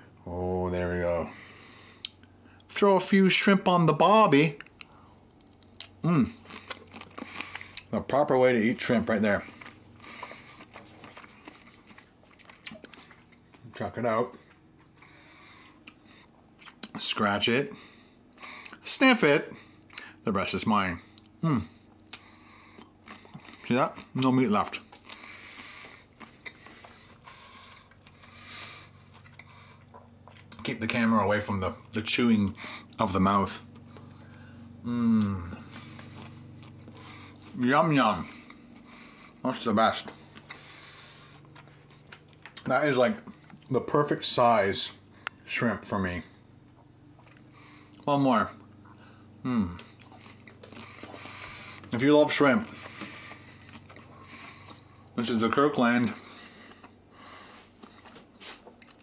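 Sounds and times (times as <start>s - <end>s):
steady low hum: 0.0s - 59.0s
person chewing food: 4.6s - 17.0s, 21.1s - 30.7s, 33.6s - 43.8s, 46.4s - 55.2s, 56.0s - 59.0s.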